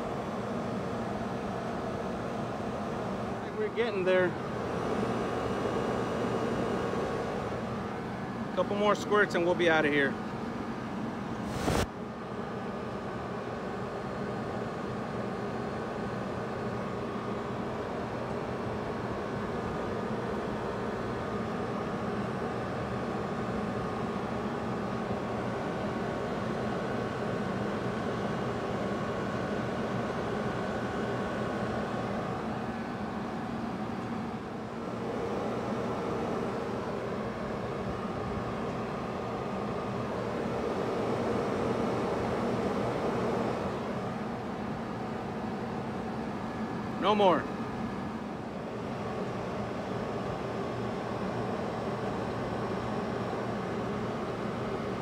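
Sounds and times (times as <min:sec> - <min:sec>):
refrigeration compressor humming: 0:00.0 - 0:11.8, 0:12.4 - 0:55.0.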